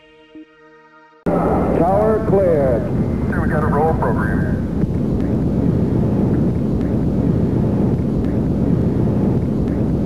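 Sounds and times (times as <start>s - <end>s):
radio voice: 1.3s - 4.7s
rocket engines rumbling: 1.3s - 10.0s.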